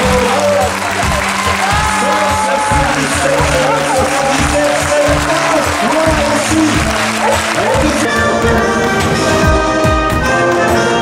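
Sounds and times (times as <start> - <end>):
audience applauding: 0.0 - 8.2
music: 0.0 - 11.0.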